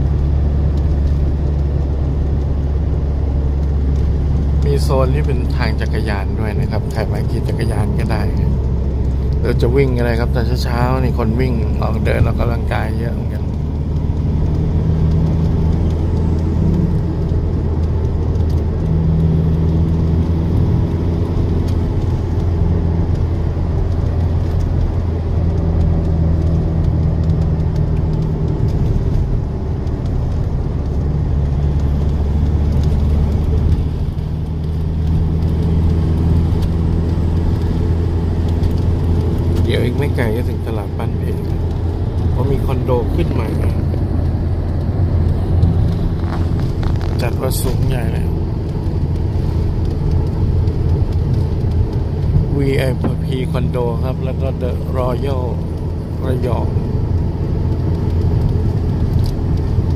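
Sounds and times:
vehicle engine and tyre drone: 0.0s - 59.9s.

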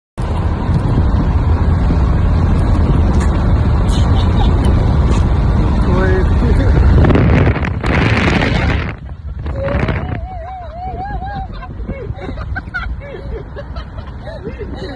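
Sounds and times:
road noise: 0.2s - 14.9s
wind buffeting microphone: 0.2s - 14.9s.

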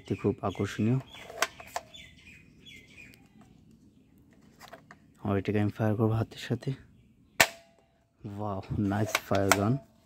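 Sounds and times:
faint bird chirps: 0.0s - 5.3s.

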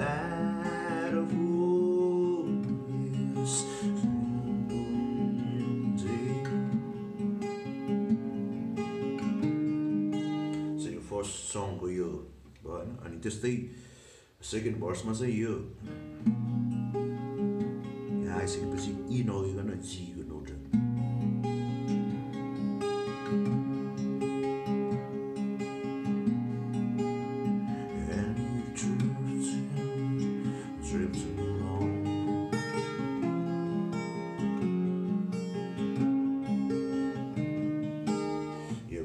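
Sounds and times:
twelve-string acoustic guitar picking: 0.0s - 13.1s, 14.8s - 39.0s.

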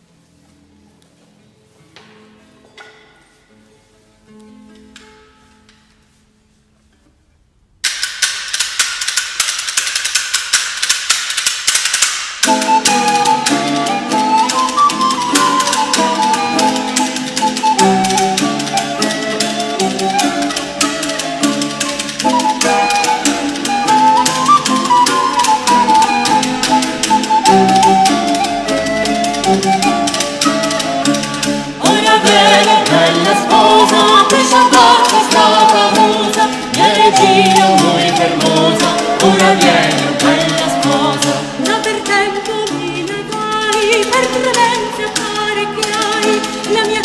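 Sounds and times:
wooden percussion clicking: 7.8s - 47.0s
recorder melody: 12.4s - 41.9s
lower accompaniment: 12.4s - 43.4s.

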